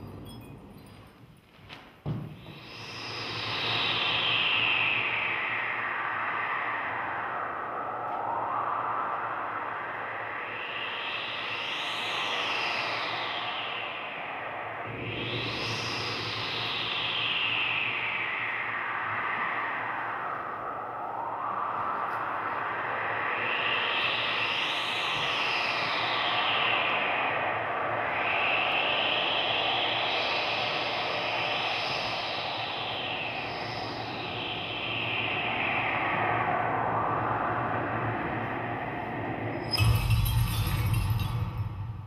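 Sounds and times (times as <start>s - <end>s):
sweeping electronic noise wash: 2.4s - 42.0s.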